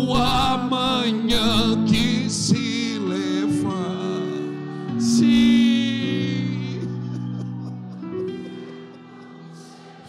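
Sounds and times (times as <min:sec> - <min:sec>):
keyboard choir pad chords: 0:00.0 - 0:10.0.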